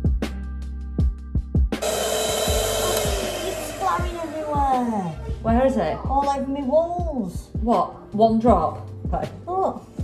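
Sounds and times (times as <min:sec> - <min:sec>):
electric hand mixer whirring: 0:01.8 - 0:05.5.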